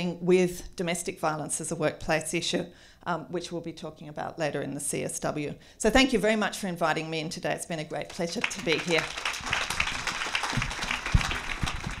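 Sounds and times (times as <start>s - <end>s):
audience applauding: 8.1s - 12.0s.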